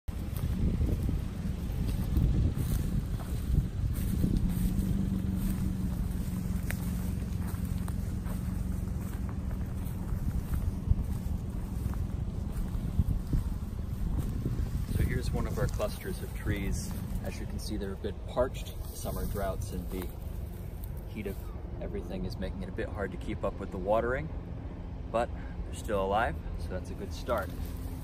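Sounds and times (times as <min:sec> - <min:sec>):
distant engine droning: 0:00.0 - 0:28.0
wind buffeting microphone: 0:00.1 - 0:20.5
grass rustling underfoot: 0:00.1 - 0:22.2, 0:27.0 - 0:28.0.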